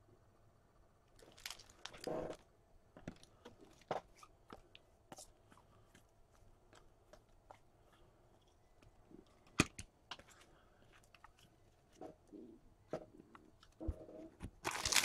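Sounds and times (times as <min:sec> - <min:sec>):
foil wrapper crinkles: 0:01.2 - 0:02.1, 0:14.6 - 0:15.0.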